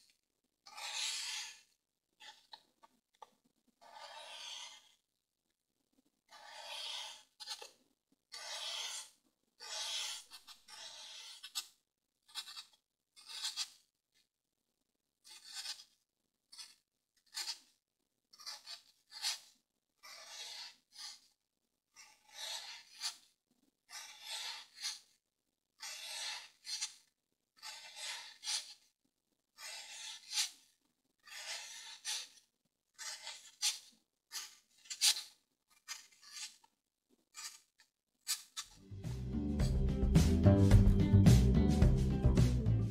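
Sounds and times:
knife rasping through foam: 0:00.6 - 0:02.6, 0:03.8 - 0:05.0, 0:06.3 - 0:11.7, 0:12.3 - 0:13.8, 0:15.2 - 0:15.9, 0:16.5 - 0:17.7, 0:18.4 - 0:21.3, 0:21.9 - 0:25.1, 0:25.8 - 0:27.0, 0:27.6 - 0:28.8, 0:29.6 - 0:36.6, 0:37.3 - 0:38.7.

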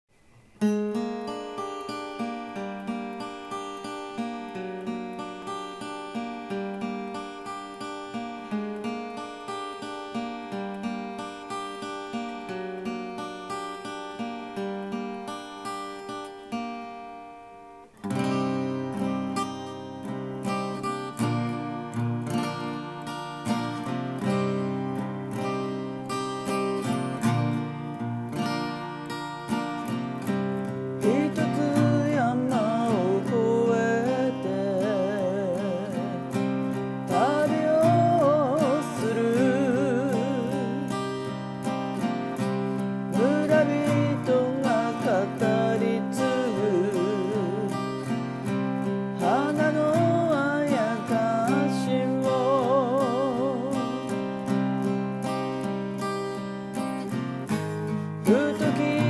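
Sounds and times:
acoustic guitar plucking: 0:00.1 - 0:59.0.

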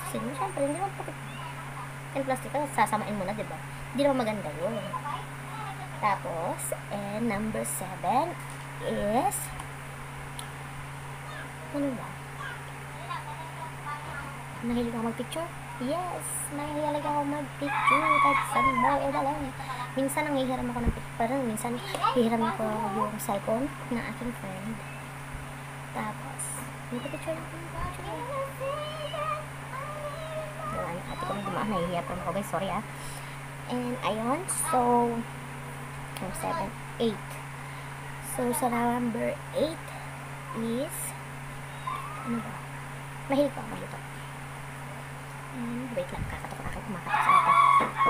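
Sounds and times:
steady low hum: 0:00.0 - 0:48.0
rooster crowing: 0:17.6 - 0:20.0, 0:41.7 - 0:42.7, 0:47.0 - 0:48.0.

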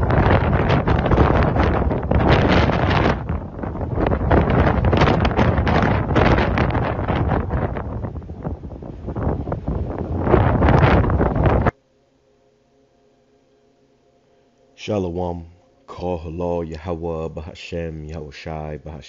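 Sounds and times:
wind buffeting microphone: 0:00.0 - 0:11.7.

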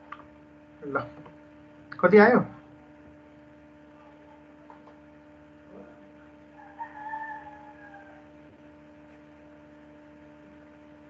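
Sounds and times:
steady electrical hum: 0:00.0 - 0:11.0
drawn-out pitched call: 0:06.6 - 0:08.3.

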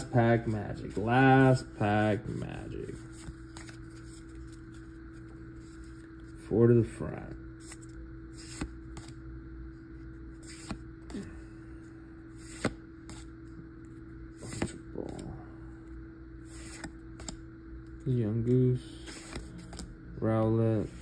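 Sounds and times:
low hum: 0:00.0 - 0:21.0
cards sliding clicks and flicks: 0:07.6 - 0:09.2, 0:10.4 - 0:10.8, 0:12.4 - 0:13.3, 0:14.4 - 0:15.2, 0:16.5 - 0:17.4, 0:19.1 - 0:20.5.

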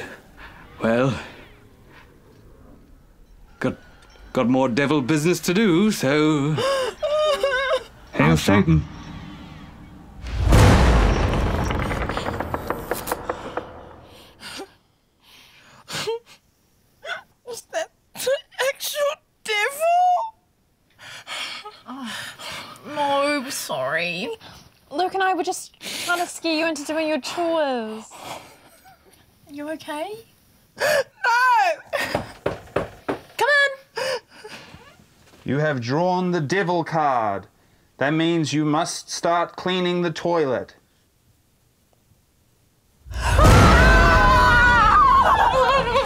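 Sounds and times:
woman sobbing: 0:06.4 - 0:08.1, 0:33.7 - 0:34.7, 0:44.6 - 0:46.0
woman wailing: 0:06.6 - 0:08.0, 0:43.2 - 0:46.0
deep rumble: 0:08.2 - 0:14.4
women screaming: 0:43.1 - 0:46.0.

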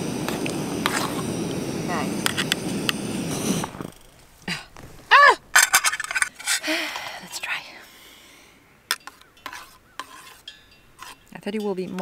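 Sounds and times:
spoon tapping against metal pot: 0:11.5 - 0:12.0.

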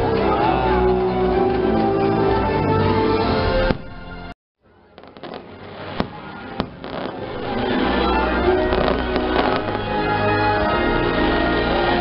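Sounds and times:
show music: 0:00.0 - 0:12.0
fireworks bursting and crackling: 0:04.8 - 0:10.3
sharp firework bangs: 0:05.0 - 0:07.3, 0:08.7 - 0:09.9.

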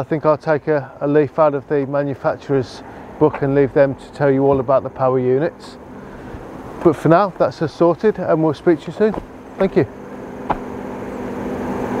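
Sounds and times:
distant engine droning: 0:00.0 - 0:12.0.

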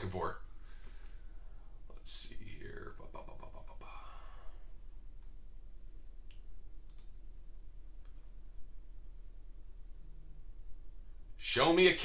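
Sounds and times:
person muttering: 0:02.6 - 0:04.4.

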